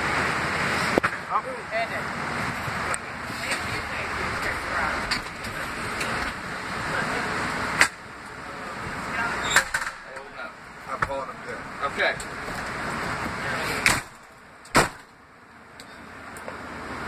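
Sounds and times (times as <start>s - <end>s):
stretcher rolling rumble and rattle: 0.0s - 15.1s.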